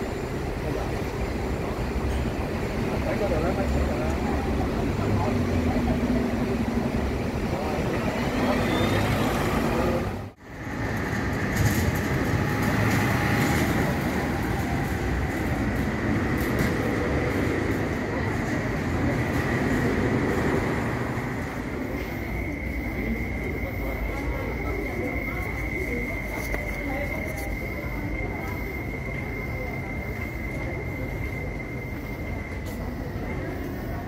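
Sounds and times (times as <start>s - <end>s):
diesel bus engine: 0.0s - 34.0s
road traffic: 0.0s - 34.0s
steady high whine: 0.0s - 34.0s.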